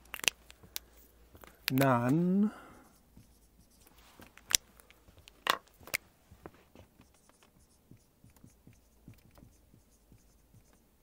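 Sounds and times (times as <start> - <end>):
marker writing on whiteboard: 0.5 - 11.0.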